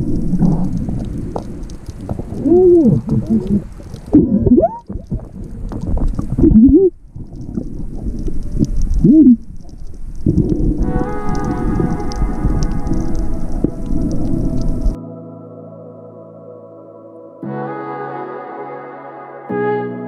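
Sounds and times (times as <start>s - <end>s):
churning water underwater: 0.0s - 15.0s
person squealing through snorkel: 2.4s - 4.9s
music with held keyboard notes: 10.8s - 20.0s.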